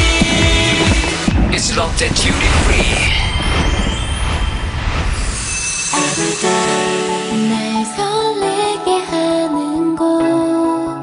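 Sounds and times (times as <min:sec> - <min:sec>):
whoosh transition effect: 0:01.4 - 0:07.9.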